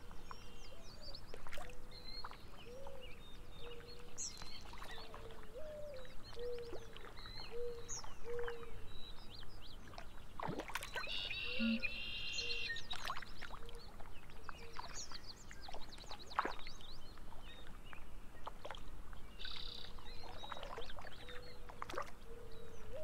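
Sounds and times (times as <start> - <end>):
water lapping and splashing: 0.0 - 23.0
birds chirping and whistling: 11.0 - 13.0
low repeated bird note: 11.2 - 12.6.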